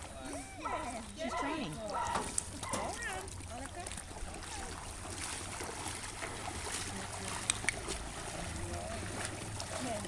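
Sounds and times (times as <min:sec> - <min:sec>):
water sloshing around dog: 0:00.0 - 0:10.0.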